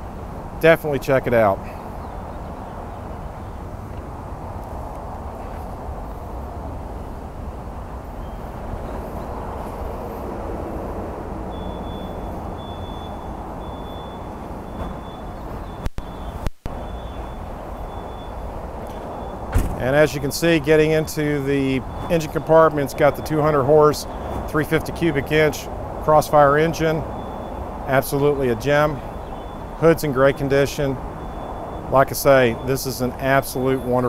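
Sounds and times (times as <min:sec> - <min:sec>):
car engine idling: 0:11.5 - 0:24.2.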